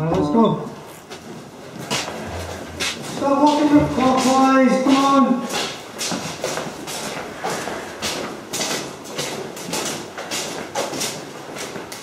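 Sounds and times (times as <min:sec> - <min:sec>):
shuffling footsteps on hard floor: 0:00.3 - 0:12.0.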